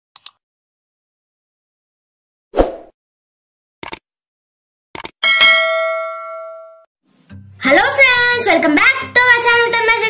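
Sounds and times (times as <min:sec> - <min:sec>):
bell ding ringing: 0:05.2 - 0:06.9.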